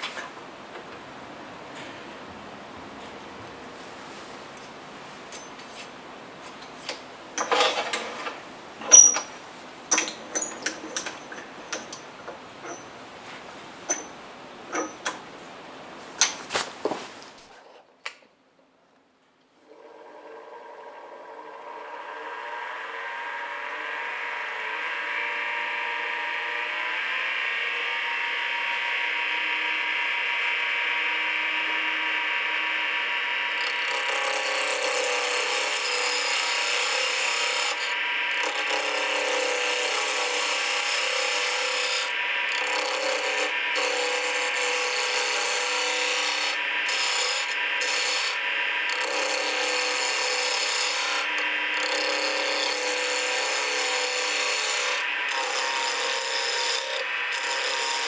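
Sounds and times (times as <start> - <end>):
wood lathe whine: 9.9 - 15.2, 19.6 - 58.0
turning tool shaving wood: 20.1 - 58.0.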